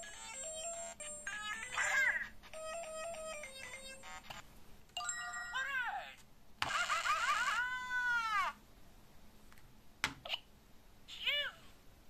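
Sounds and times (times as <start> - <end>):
electronic toy defeat sound: 0.1 - 4.3, 6.6 - 7.6.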